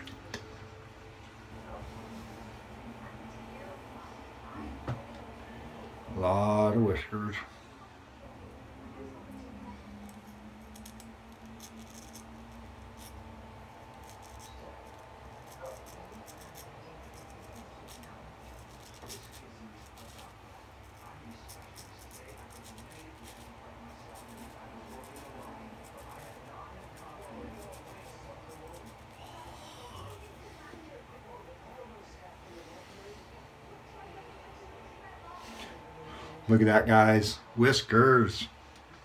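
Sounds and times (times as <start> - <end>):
straight razor scraping whiskers: 10.0 - 30.3.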